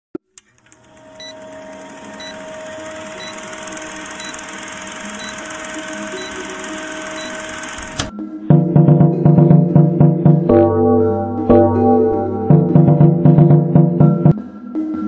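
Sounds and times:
film projector clatter and hiss: 0.4 - 8.1.

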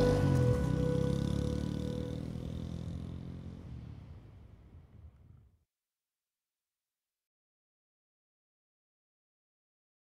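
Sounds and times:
music track: 0.0 - 2.4
small motorcycle engine pulling away: 0.0 - 5.4.

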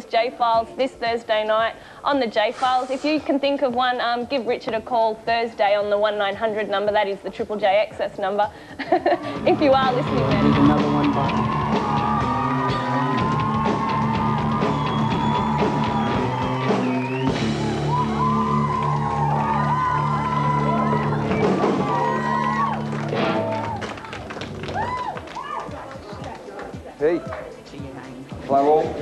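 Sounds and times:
rock band playing live: 9.4 - 18.3, 20.3 - 23.8.

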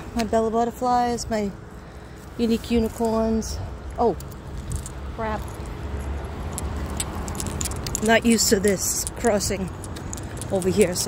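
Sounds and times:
road traffic rumble: 0.0 - 11.0
clicks and jingles: 3.9 - 11.0.

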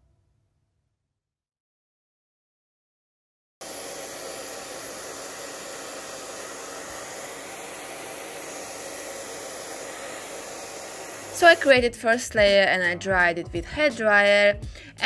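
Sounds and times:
hair dryer blowing: 3.6 - 12.6.

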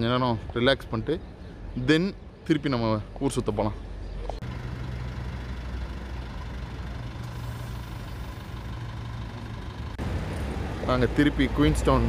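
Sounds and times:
street noise: 0.0 - 12.0
vehicle engine idling: 1.2 - 12.0.

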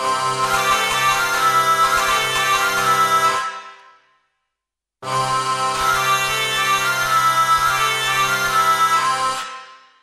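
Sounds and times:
hurdy-gurdy drone and melody: 0.0 - 3.6, 5.0 - 9.7.

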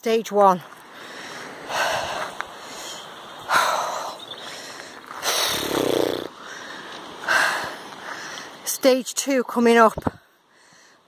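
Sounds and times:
person breathing hard: 0.9 - 5.8, 6.4 - 8.6.

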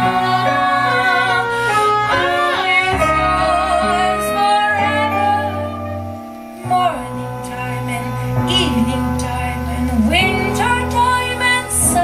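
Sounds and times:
double bass notes: 0.0 - 12.0
saxophones playing melody: 0.0 - 12.0.

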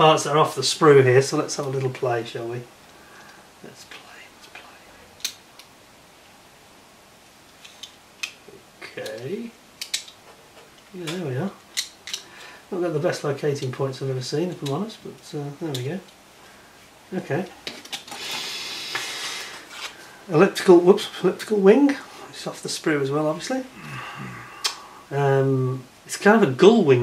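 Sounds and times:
room hiss: 0.0 - 27.0
plastic parts clicking together: 9.0 - 10.2, 11.6 - 12.3.

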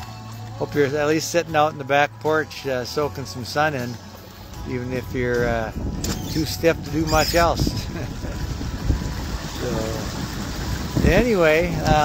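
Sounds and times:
water rushing along boat hulls: 0.0 - 12.0
wind rumble on microphone: 4.6 - 12.0.

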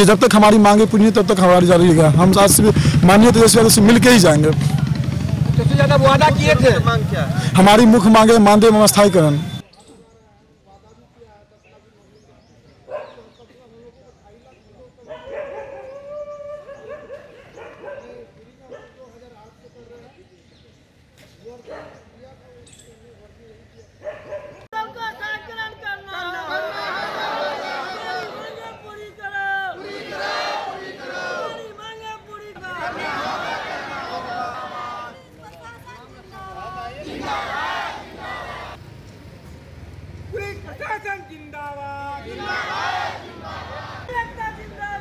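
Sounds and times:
crowd shouting a slogan: 24.8 - 38.8, 42.0 - 45.0.

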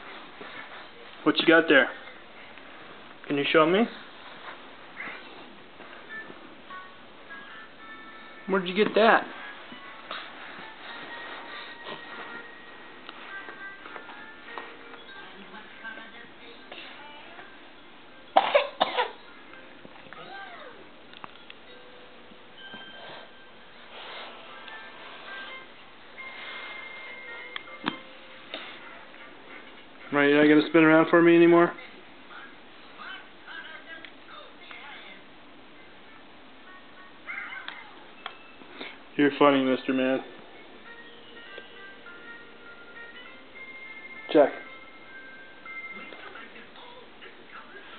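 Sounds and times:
loud coughs: 18.4 - 19.2.

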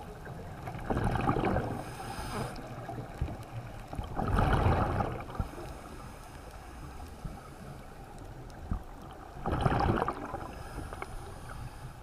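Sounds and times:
low underwater rumble: 0.0 - 6.2
exhaled bubbles rushing: 0.6 - 1.9, 4.0 - 5.4, 9.3 - 10.6.

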